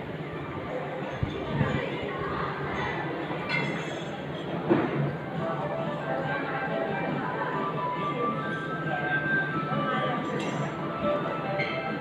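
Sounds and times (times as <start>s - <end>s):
hubbub of indistinct voices: 0.0s - 12.0s
background music: 5.2s - 12.0s.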